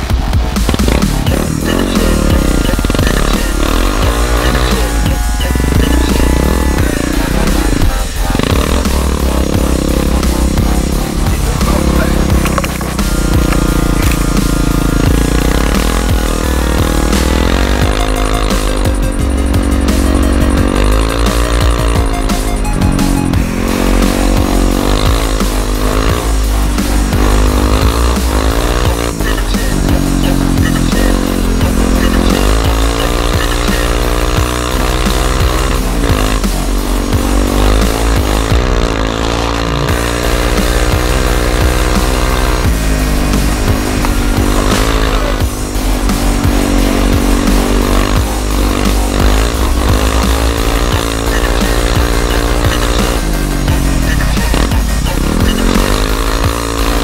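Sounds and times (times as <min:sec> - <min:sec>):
electronic music with steady beat: 0:00.0 - 0:57.0
quad engine revving: 0:00.0 - 0:57.0.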